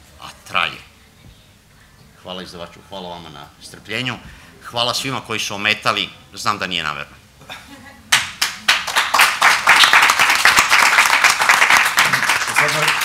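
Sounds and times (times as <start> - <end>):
audience applauding: 8.1 - 13.0.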